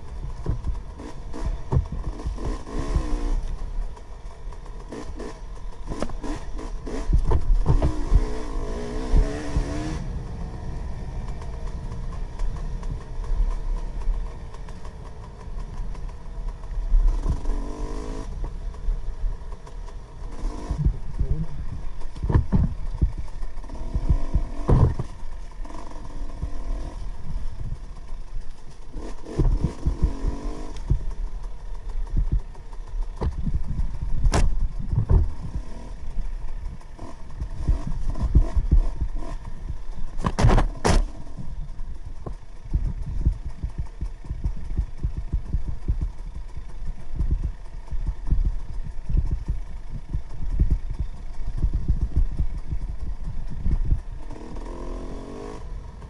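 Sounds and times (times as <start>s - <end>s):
dirt bike engine: 0.0s - 56.0s
sharp knocks: 22.2s - 23.1s.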